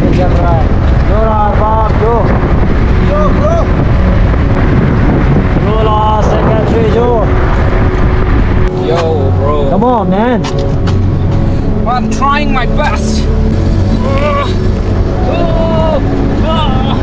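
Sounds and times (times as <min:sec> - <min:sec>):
car and road noise: 0:00.0 - 0:17.0
wind on microphone: 0:00.0 - 0:17.0.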